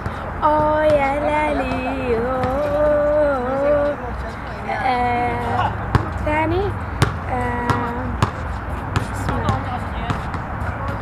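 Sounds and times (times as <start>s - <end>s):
faint voices: 0.0s - 11.0s
basketball bouncing on hard court: 7.0s - 11.0s.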